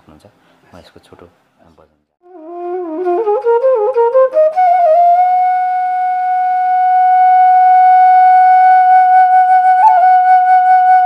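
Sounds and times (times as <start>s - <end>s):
flute long steady note: 2.2s - 11.0s.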